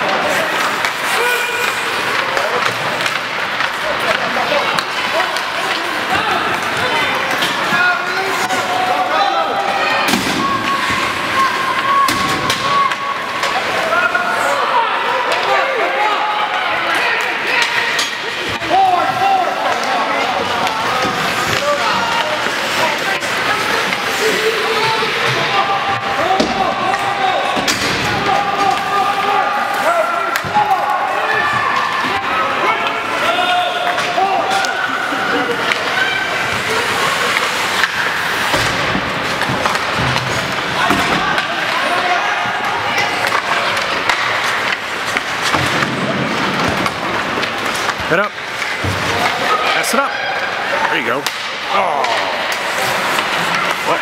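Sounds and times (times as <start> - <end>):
hockey sticks hitting puck: 0.0 - 54.0
spectators chattering and calling out: 0.0 - 54.0.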